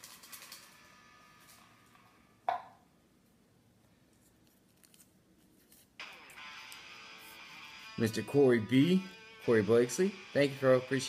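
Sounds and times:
paper crinkling: 4.1 - 6.0.

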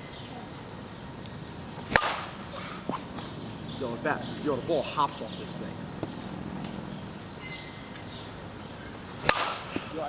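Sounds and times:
bat cracking a ball: 1.8 - 3.2, 9.2 - 10.0.

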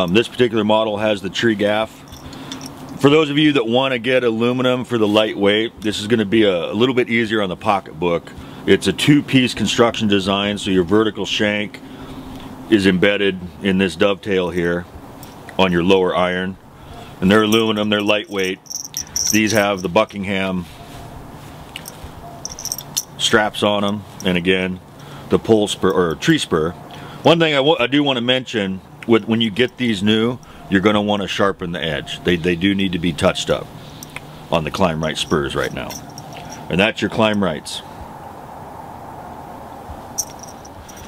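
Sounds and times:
metal buckles clinking: 0.0 - 0.4, 1.7 - 3.2, 15.1 - 15.9, 16.9 - 20.6, 21.7 - 24.4, 29.5 - 30.8, 33.2 - 37.6, 40.1 - 41.0
low background hiss: 0.0 - 38.0, 39.7 - 41.0.

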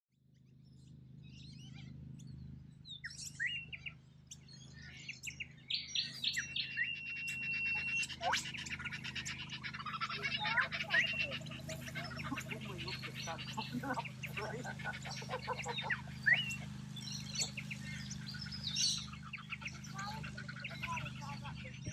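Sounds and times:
birds chirping and calling: 0.3 - 21.9
whistled bird call: 2.9 - 21.9.

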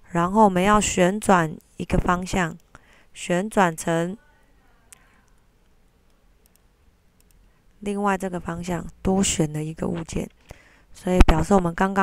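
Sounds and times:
person speaking: 0.0 - 6.7, 7.3 - 12.0
computer mouse clicks: 4.9 - 7.6.

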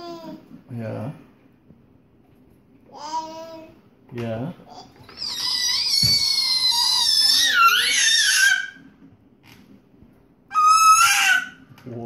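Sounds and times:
baby squealing: 4.7 - 8.9, 10.5 - 11.7.

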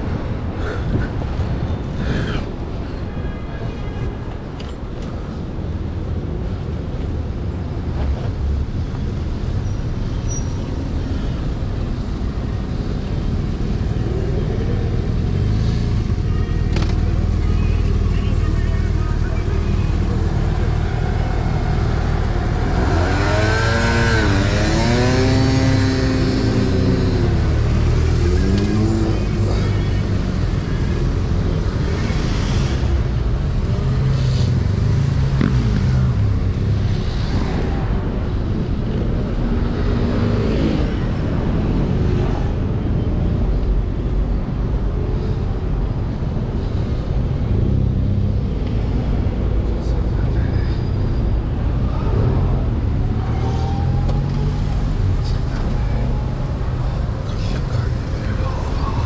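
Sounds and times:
car and motorcycle engines: 4.3 - 59.0.

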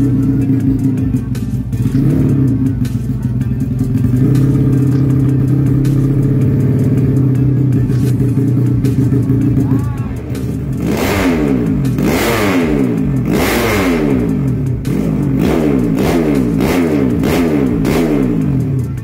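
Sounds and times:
motorcycle engine idling and revving: 0.0 - 19.0.

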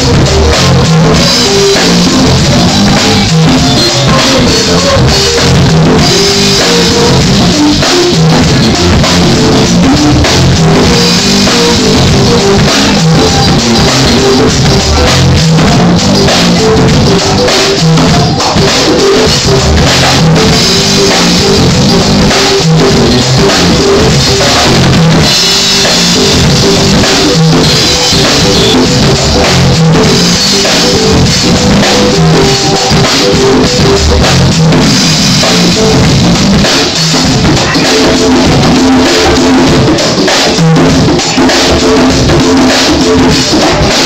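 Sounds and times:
congas: 0.0 - 44.0
drum kit: 0.0 - 44.0
electric bass: 0.0 - 44.0
electric guitar: 0.0 - 44.0.

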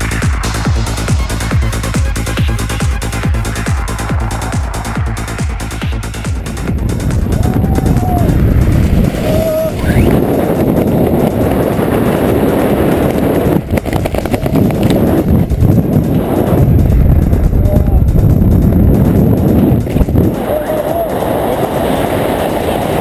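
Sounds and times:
wind rushing over microphone: 0.0 - 23.0.

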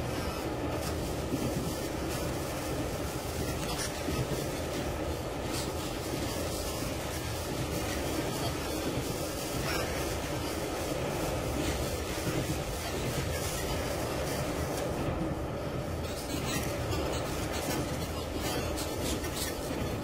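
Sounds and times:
train running on rails: 0.0 - 20.0.

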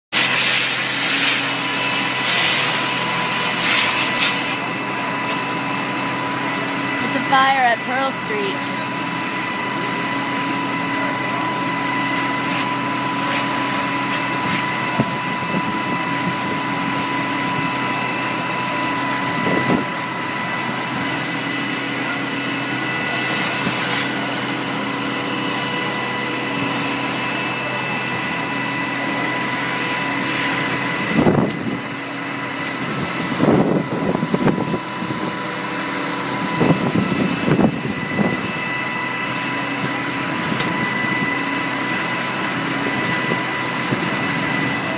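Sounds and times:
fire engine pump whining: 0.1 - 44.9.

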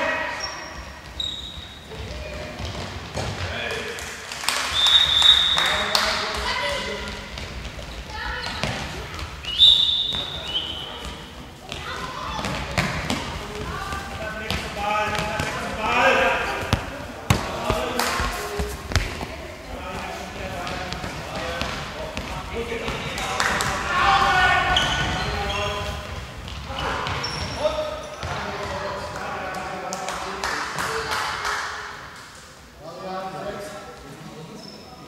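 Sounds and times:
ball bouncing on hall floor: 1.0 - 4.1, 4.8 - 15.8, 16.5 - 29.2.

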